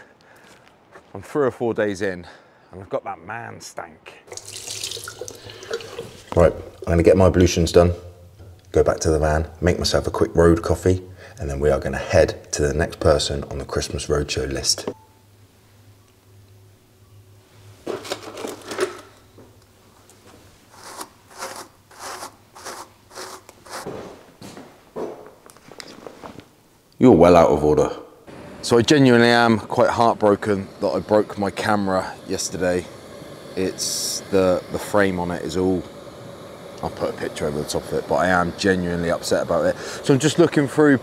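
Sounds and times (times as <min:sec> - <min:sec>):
tap water running into basin: 0:04.3 - 0:06.9
items rustling in toiletry bag: 0:17.8 - 0:19.2
bristle brush strokes: 0:20.3 - 0:24.1.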